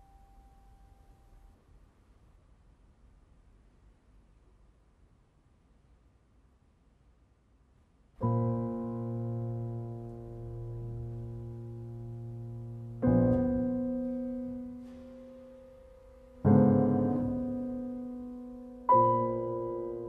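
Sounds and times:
soft piano chords: 0.0s - 1.6s, 8.2s - 20.0s.

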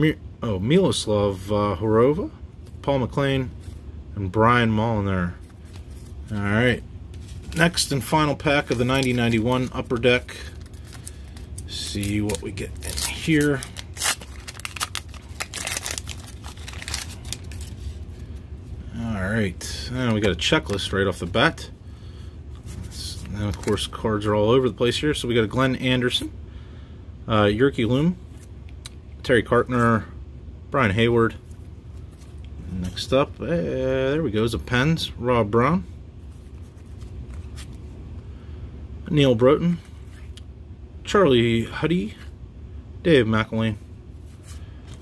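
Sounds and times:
low steady hum: 0.0s - 45.0s
trading cards being shuffled: 7.1s - 18.4s, 36.3s - 37.9s
foil wrapper tearing and crinkling: 8.6s - 17.8s.

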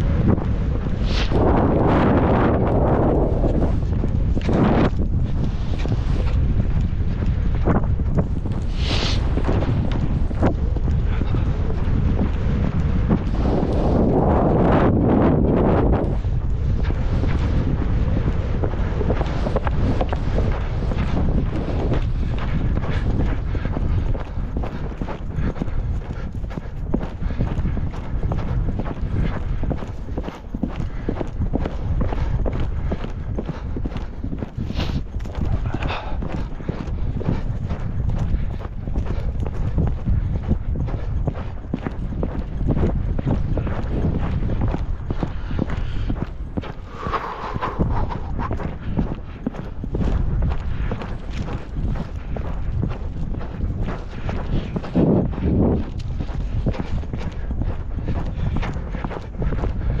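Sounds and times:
hoofbeats on dirt track: 0.0s - 60.0s.

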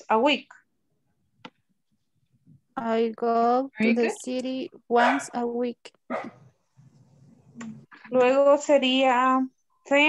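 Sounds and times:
dog barking: 5.0s - 5.4s, 6.1s - 6.5s.

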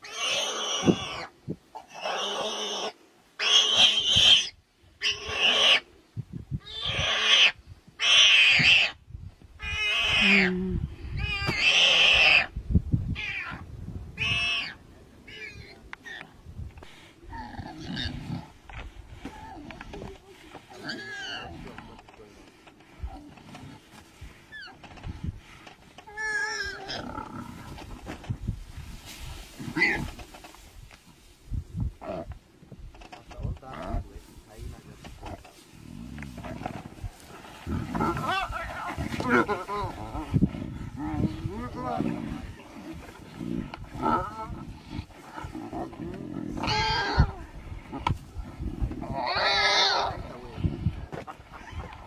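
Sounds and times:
low growls: 33.5s - 52.0s
lion snarling: 35.2s - 52.0s.

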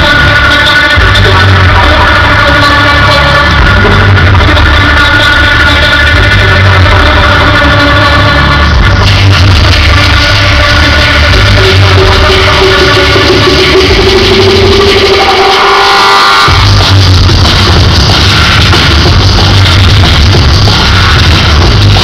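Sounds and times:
electronic dance music: 0.0s - 22.0s
heavy bass: 0.0s - 22.0s.

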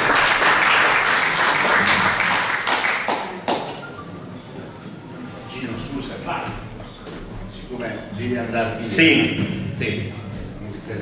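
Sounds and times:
audience applauding: 0.0s - 3.9s.

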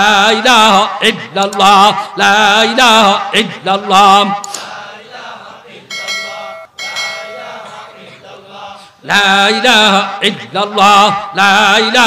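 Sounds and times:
notification bell chime: 5.9s - 7.5s.

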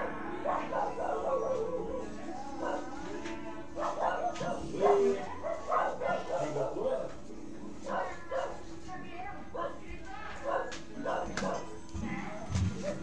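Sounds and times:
dog barking: 0.4s - 2.0s, 3.8s - 7.2s, 7.8s - 8.6s, 10.4s - 11.7s.

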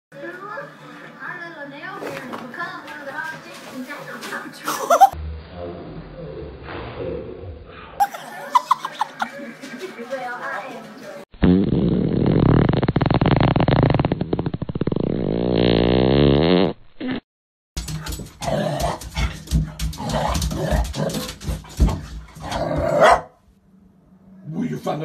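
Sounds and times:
dog growling: 22.4s - 23.2s.

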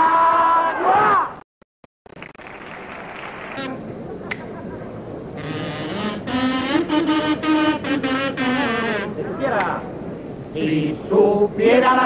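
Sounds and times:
buzzing kazoo-like pipe tune: 5.4s - 9.2s.

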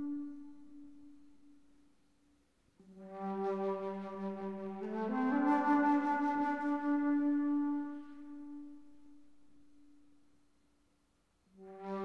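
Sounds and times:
flute note: 0.0s - 1.2s.

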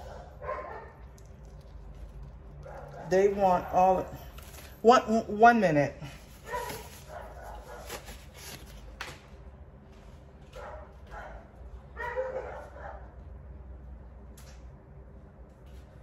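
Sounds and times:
dogs barking: 0.0s - 1.2s, 2.6s - 4.2s, 6.4s - 8.0s, 10.5s - 13.3s.

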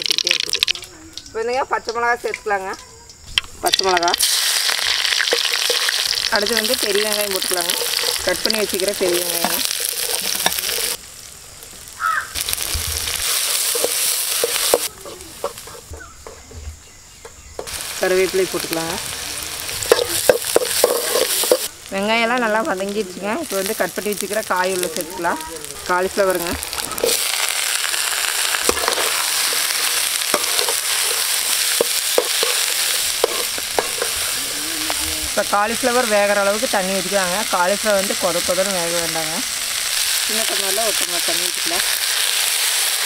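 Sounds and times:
onions sizzling in hot oil: 0.0s - 43.0s
metal spoon scraping pan: 19.9s - 21.7s, 28.6s - 34.4s.

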